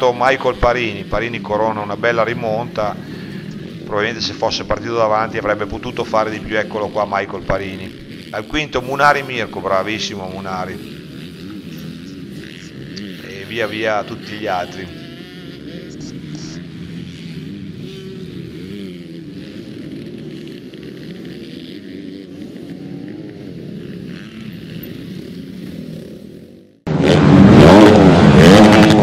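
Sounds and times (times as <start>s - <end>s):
loud engine revving: 0.0s - 29.0s
motocross bikes passing: 0.0s - 29.0s.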